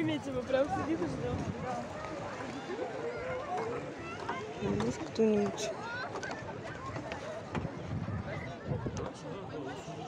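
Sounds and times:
faint indistinct voices: 0.0s - 10.0s
outdoor background noise: 0.0s - 10.0s.

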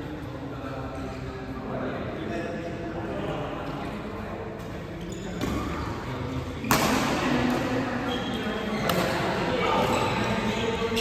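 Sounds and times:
racket hitting shuttlecock: 6.6s - 7.7s.

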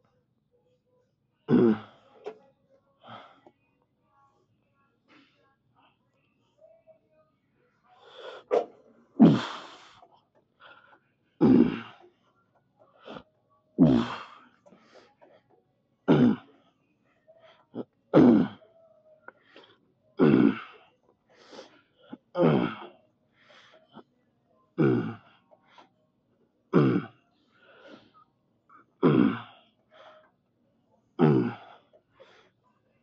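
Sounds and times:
man grunting with exertion: 1.5s - 2.0s, 9.2s - 9.8s, 11.4s - 12.0s, 13.8s - 14.4s, 16.1s - 16.4s, 18.2s - 18.6s, 20.2s - 20.8s, 22.3s - 22.9s, 26.8s - 27.2s, 29.0s - 29.6s, 31.2s - 31.8s.

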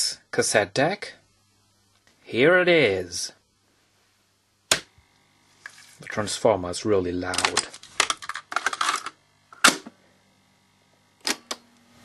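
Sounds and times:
faint transformer hum: 0.0s - 12.0s.

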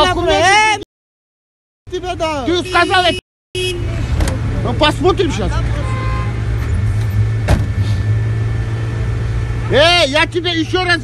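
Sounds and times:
car engine rumbling: 1.9s - 11.0s.

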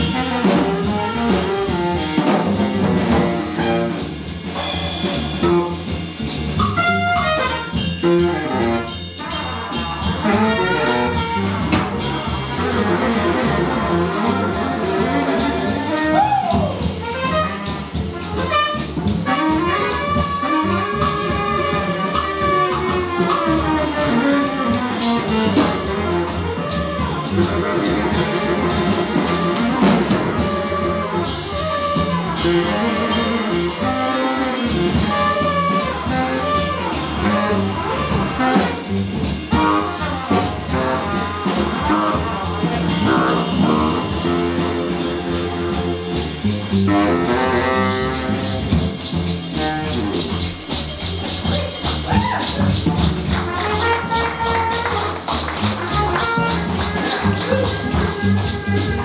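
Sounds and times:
congas: 0.0s - 59.0s
drum kit: 0.0s - 59.0s
trumpet: 0.0s - 59.0s
upright bass: 0.0s - 59.0s.

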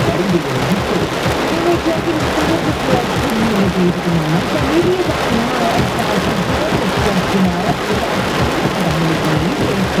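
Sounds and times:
heavy rain on a car roof: 0.0s - 10.0s.

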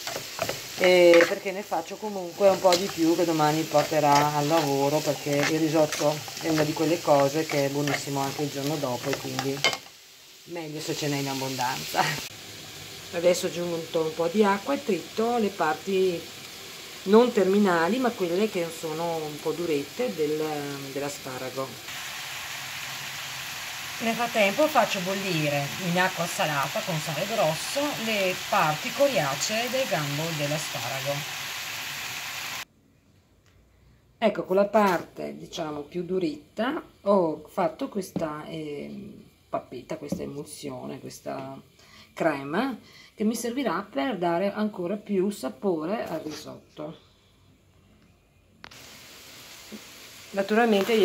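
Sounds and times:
pot of water boiling: 0.0s - 16.2s, 17.0s - 32.7s, 48.6s - 51.0s.

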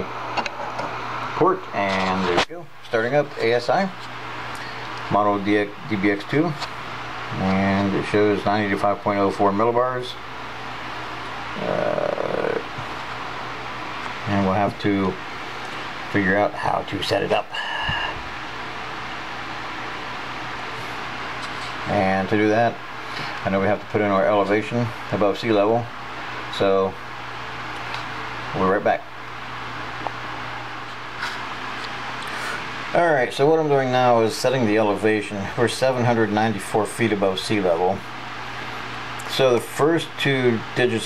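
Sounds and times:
faint low hum: 0.0s - 41.0s
man's hesitation sound: 11.5s - 12.9s.

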